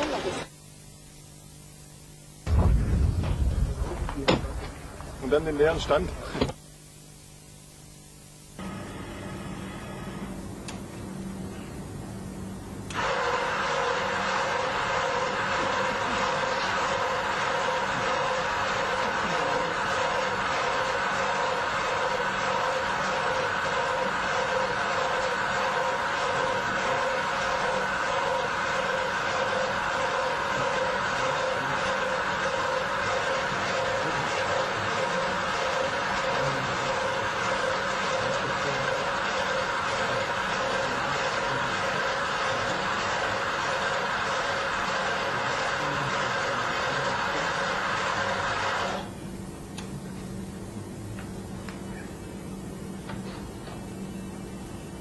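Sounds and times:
machine running with rush and hum: 0.0s - 49.6s.

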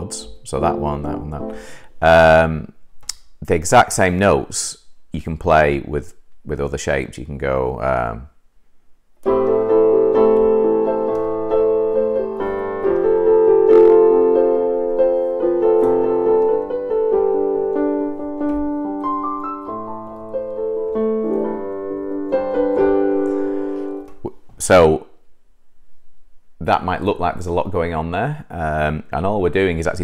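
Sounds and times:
digital piano chords: 0.0s - 2.2s, 9.2s - 24.3s.

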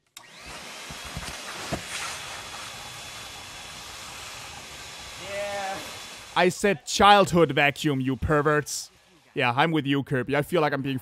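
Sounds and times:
vacuum cleaner running: 0.1s - 9.4s.

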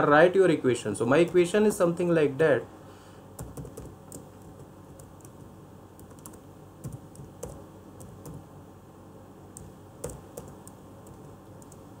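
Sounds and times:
computer keyboard keystrokes: 3.4s - 8.4s, 9.5s - 11.9s.

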